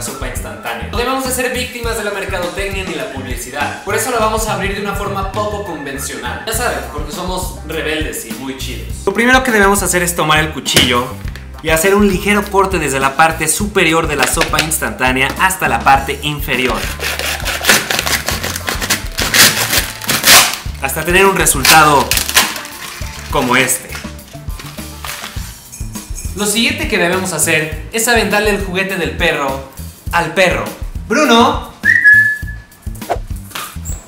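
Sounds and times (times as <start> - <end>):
background music with beat: 0.0 - 34.0
knife sawing through cup: 16.7 - 19.8
man whistling high note: 31.8 - 32.8.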